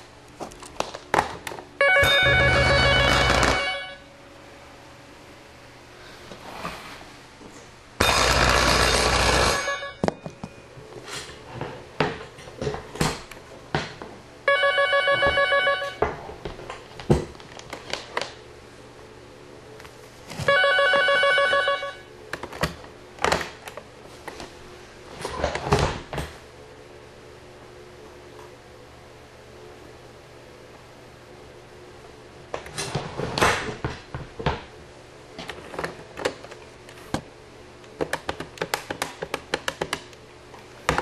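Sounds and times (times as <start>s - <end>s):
electric telephone bell ringing: 1.8s - 4.0s, 8.0s - 10.1s, 14.5s - 16.0s, 20.5s - 22.1s.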